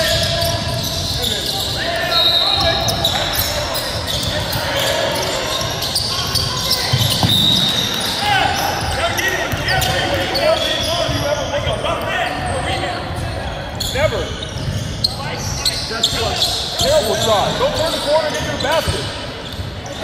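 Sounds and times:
murmur of crowd voices: 0.0s - 20.0s
sneakers squeaking on court: 0.0s - 20.0s
basketball bouncing: 6.2s - 7.8s.

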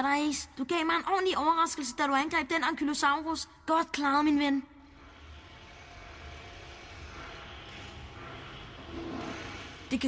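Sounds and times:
metro tunnel rumble: 4.8s - 10.0s.

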